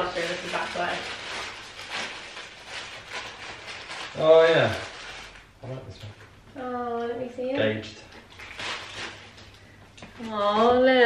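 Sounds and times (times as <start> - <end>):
paper crinkling and rustling: 0.0 - 5.5, 8.2 - 9.5.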